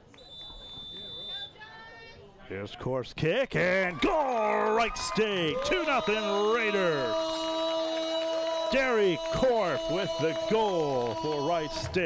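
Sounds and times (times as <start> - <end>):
referee's whistle: 0.1 - 1.6, 5.5 - 11.8.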